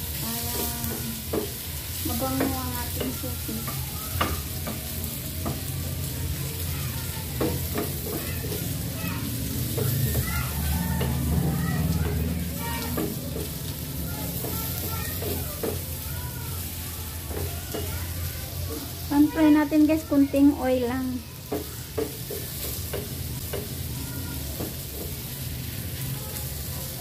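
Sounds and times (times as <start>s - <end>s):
sausages sizzling in a frying pan: 0.0s - 27.0s
wooden spatula scraping and tapping pan: 6.7s - 16.0s, 18.7s - 23.8s.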